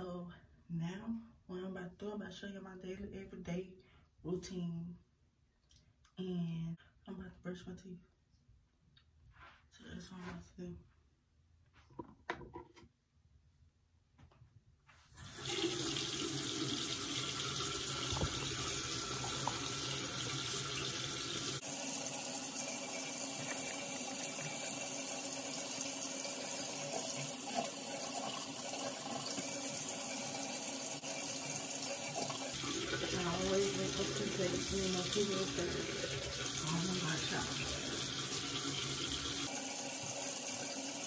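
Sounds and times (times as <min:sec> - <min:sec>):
tap water splashing into sink: 0:15.4 - 0:21.5, 0:23.1 - 0:24.8.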